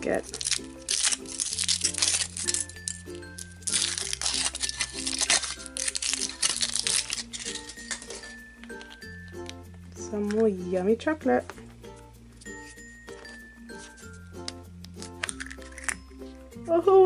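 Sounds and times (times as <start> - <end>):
foil wrapper crinkling: 0.0 - 9.6, 12.3 - 16.4.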